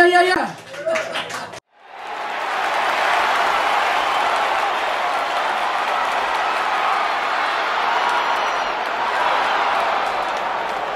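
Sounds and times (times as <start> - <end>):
audience applause: 0.6 - 10.9.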